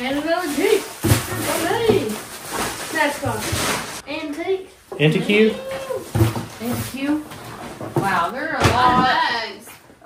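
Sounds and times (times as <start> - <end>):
voices talking: 4.9 - 6.1.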